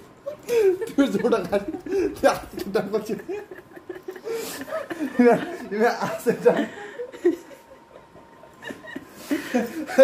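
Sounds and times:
man laughing: 0:00.2 - 0:10.0.

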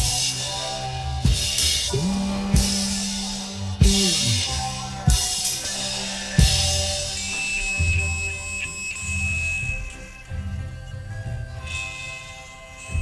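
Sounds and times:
faint steady high tone: 0:00.0 - 0:13.0
low drawn-out drum sounds: 0:01.2 - 0:05.8.

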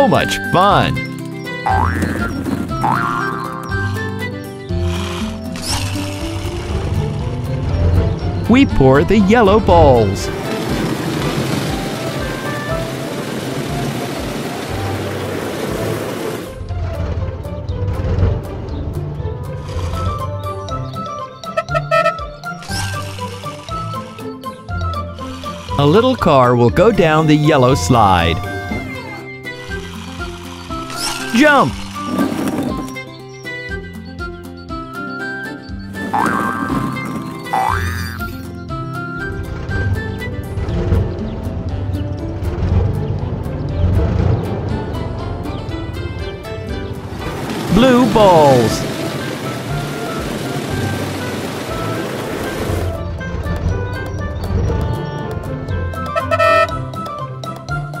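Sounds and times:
light cartoon tune: 0:00.0 - 0:10.6, 0:19.3 - 0:42.8, 0:47.7 - 0:58.0
light background music: 0:00.0 - 0:58.0.

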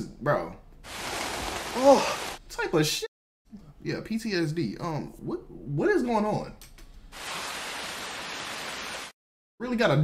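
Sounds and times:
heavy rain pouring: 0:00.8 - 0:02.4, 0:07.1 - 0:09.2.

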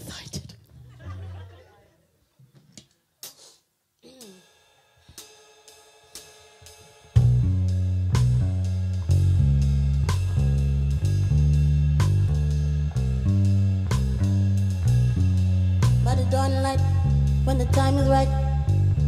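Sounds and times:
full band playing a groove: 0:06.1 - 0:18.1.

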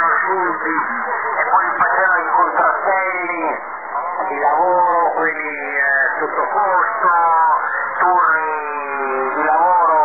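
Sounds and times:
men's voices over shortwave radio: 0:00.0 - 0:10.0.

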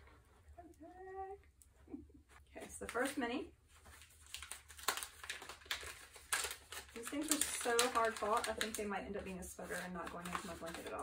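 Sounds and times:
paper wrapping crinkling: 0:02.6 - 0:11.0.

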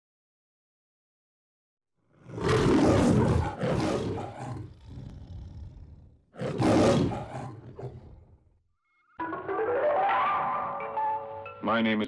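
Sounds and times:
lion roaring: 0:02.1 - 0:08.5.

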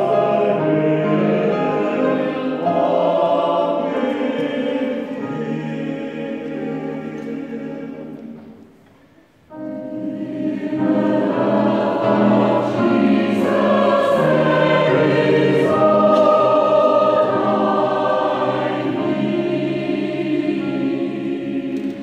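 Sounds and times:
choir singing a hymn: 0:00.0 - 0:08.8, 0:09.5 - 0:22.0.

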